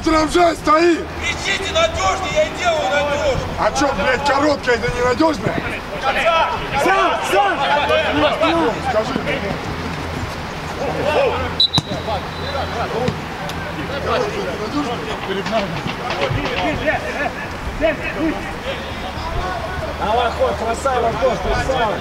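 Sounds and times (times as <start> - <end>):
players shouting: 0.0 - 22.0
whistle blast: 11.6 - 12.8.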